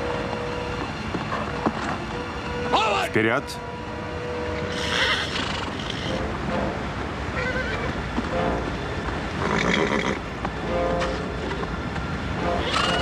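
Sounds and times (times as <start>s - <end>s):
horses whinnying: 4.7s - 6.2s, 7.4s - 7.9s, 9.4s - 10.2s, 12.6s - 13.0s.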